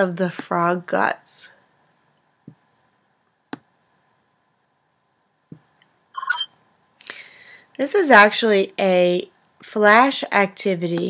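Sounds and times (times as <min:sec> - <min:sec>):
short electronic beep: 0:06.2 - 0:06.5.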